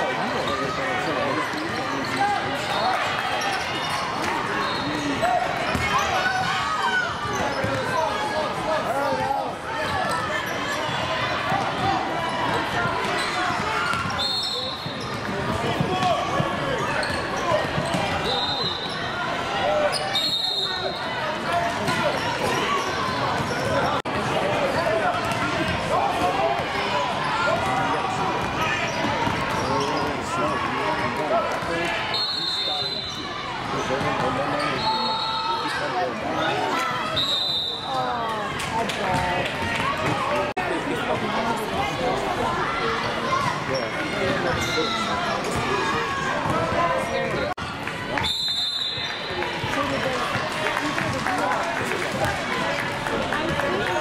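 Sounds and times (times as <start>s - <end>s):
chatter and shouting: 0.0s - 54.0s.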